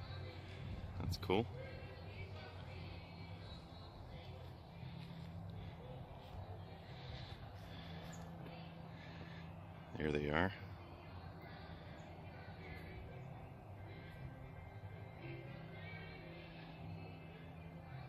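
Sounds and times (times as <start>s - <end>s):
distant voices: 0.0s - 18.0s
steady low hum: 0.0s - 18.0s.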